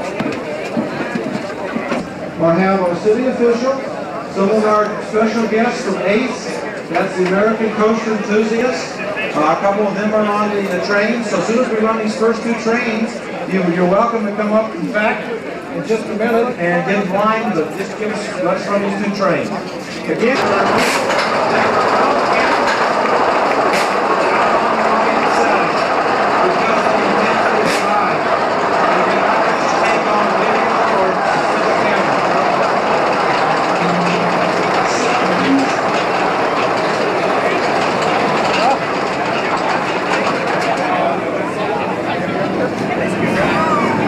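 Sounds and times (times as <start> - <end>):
sharp clicks of coaster track: 0.0 - 2.2, 4.4 - 15.0, 17.1 - 44.0
crowd voices: 0.0 - 44.0
roller coaster clattering rumble: 0.0 - 44.0.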